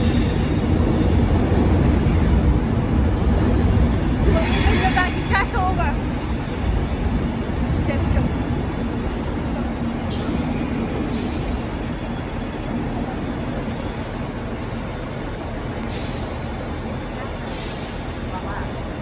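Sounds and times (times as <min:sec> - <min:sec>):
electric train rumbling: 0:00.0 - 0:19.0.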